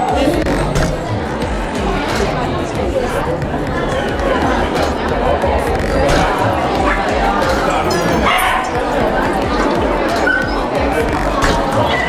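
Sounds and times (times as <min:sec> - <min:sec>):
background music: 0:00.0 - 0:12.0
voices: 0:00.0 - 0:12.0.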